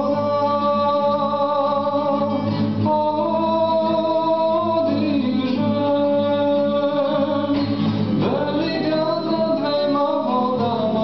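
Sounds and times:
classical guitar: 0.0 - 11.0
man singing spiritual song: 0.0 - 11.0.

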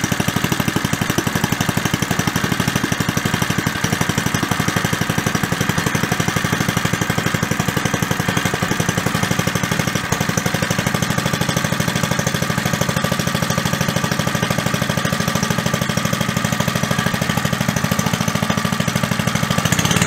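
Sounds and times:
small engine running steadily: 0.0 - 20.0.

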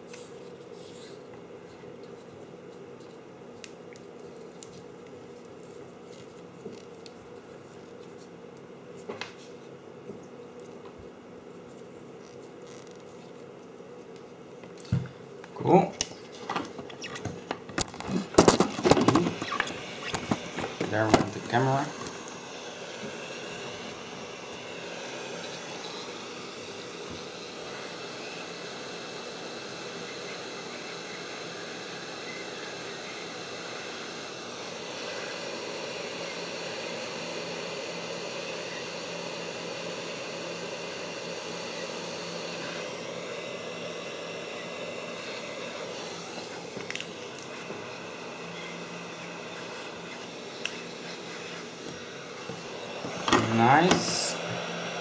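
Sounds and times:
heat gun fan whirring: 0.0 - 55.0.

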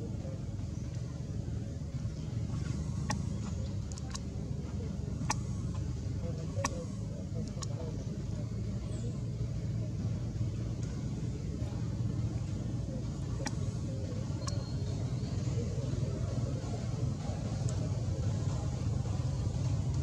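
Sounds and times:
low background rumble: 0.0 - 20.0.

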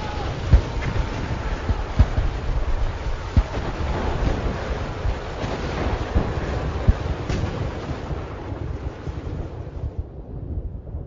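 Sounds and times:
deep rumble: 0.0 - 11.0
steady rushing noise: 0.0 - 11.0.

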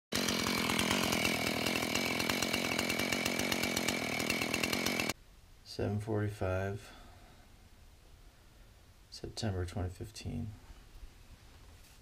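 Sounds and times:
small motor running: 0.2 - 5.1.

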